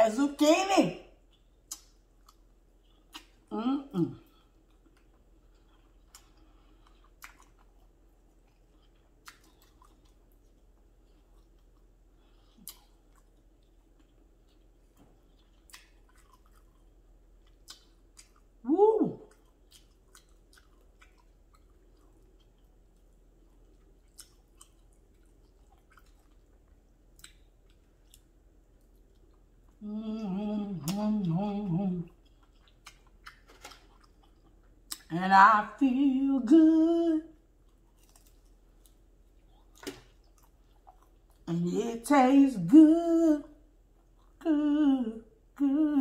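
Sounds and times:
woman's voice: 0.0s - 1.2s, 3.5s - 4.2s, 18.6s - 19.3s, 35.1s - 37.3s, 41.5s - 43.5s, 44.4s - 46.0s
person chewing noodles: 1.2s - 3.5s, 4.2s - 18.6s, 19.2s - 35.1s, 37.3s - 41.5s, 43.7s - 44.4s
wet mouth clicks: 1.7s - 2.0s
woman humming mmm: 3.5s - 4.3s, 29.8s - 32.1s, 44.4s - 46.0s
woman saying mmm: 3.5s - 4.3s, 18.6s - 19.3s.

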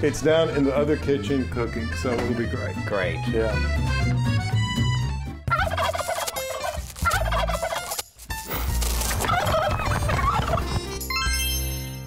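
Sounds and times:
turkeys gobbling: 5.5s - 8.0s, 9.0s - 10.8s.

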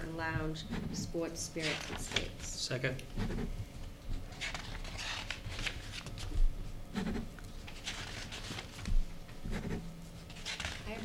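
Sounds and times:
papers rustling: 1.6s - 2.5s, 4.2s - 6.6s, 7.4s - 9.1s, 10.2s - 11.0s.

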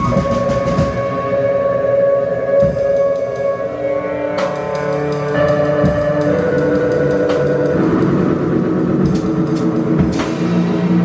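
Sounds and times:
sharp percussion hits: 0.0s - 3.6s
low rumbling drone: 0.0s - 11.0s.

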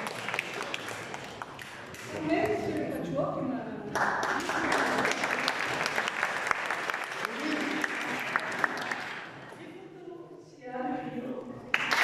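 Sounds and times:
audience applause: 0.0s - 2.0s, 4.0s - 9.4s, 11.7s - 12.0s.

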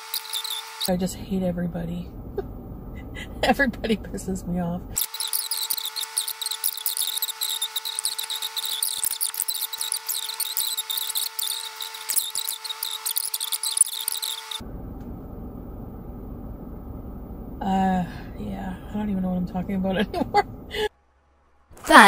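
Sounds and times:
sped-up squeaky chatter: 0.0s - 0.9s, 5.0s - 14.6s
steady whine: 0.0s - 20.8s
low steady hum: 0.8s - 5.0s, 14.6s - 22.0s.

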